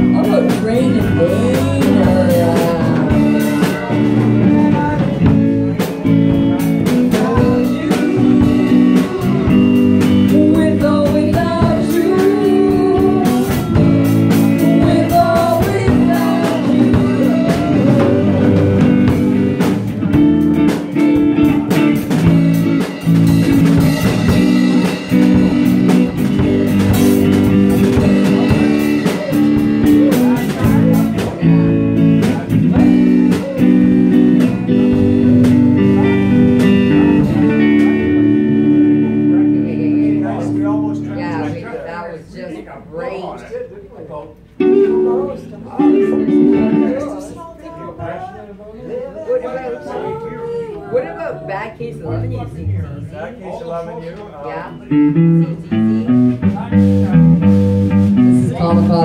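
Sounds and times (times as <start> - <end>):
drum kit: 0.0 - 41.6, 54.8 - 59.0
electric bass: 0.0 - 42.0, 44.5 - 47.4, 51.2 - 53.4, 54.5 - 59.0
electric guitar: 0.0 - 42.0, 44.4 - 47.5, 54.5 - 59.0
women singing: 0.2 - 5.5, 7.0 - 19.2.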